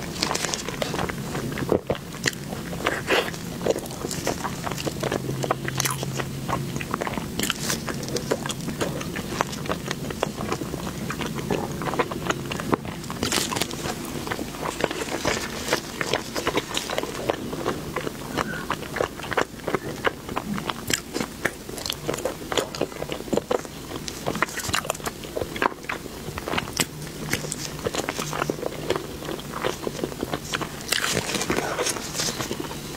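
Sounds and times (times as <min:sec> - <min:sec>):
biting into soft bun: 0:00.0 - 0:32.9
wet chewing: 0:00.0 - 0:32.9.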